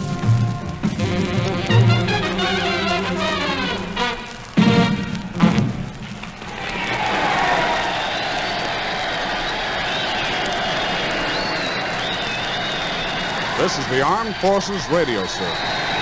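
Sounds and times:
dance band playing: 0:00.0 - 0:05.8, 0:12.8 - 0:16.0
audience applauding: 0:00.0 - 0:16.0.

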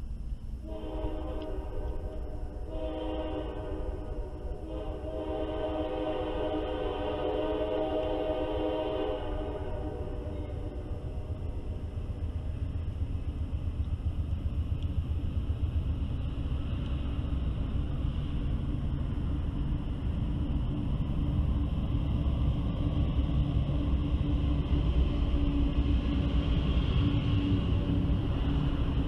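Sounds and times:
diesel locomotive engines rumbling: 0:00.0 - 0:29.0.

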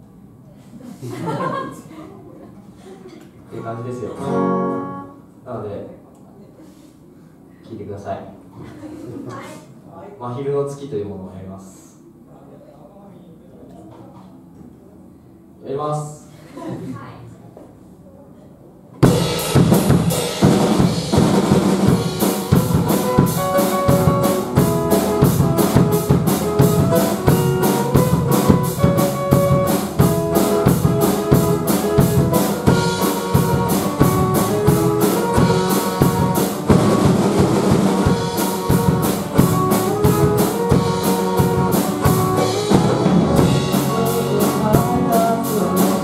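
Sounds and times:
acoustic guitar: 0:04.1 - 0:05.4, 0:19.6 - 0:46.0
drum kit beat: 0:19.0 - 0:46.0
electric bass: 0:19.0 - 0:46.0
live band playing: 0:19.0 - 0:46.0.

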